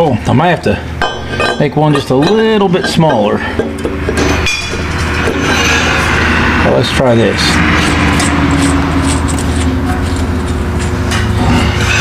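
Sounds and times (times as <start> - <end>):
machine droning: 0.0 - 12.0.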